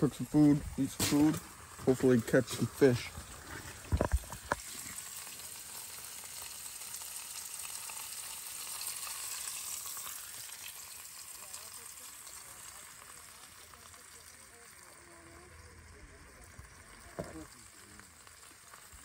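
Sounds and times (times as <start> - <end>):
burgers sizzling: 0.0 - 19.0.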